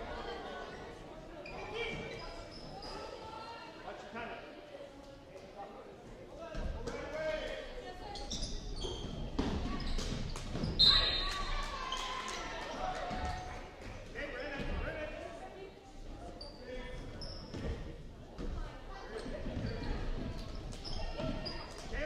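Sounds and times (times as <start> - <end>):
shoe squeak: 1.4 - 3.3, 8.1 - 11.5, 16.3 - 17.9, 19.1 - 21.8.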